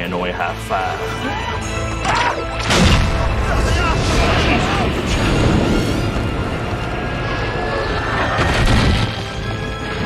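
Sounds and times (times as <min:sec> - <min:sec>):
action score music: 0:00.0 - 0:10.0
deep rumble of explosions: 0:02.7 - 0:10.0.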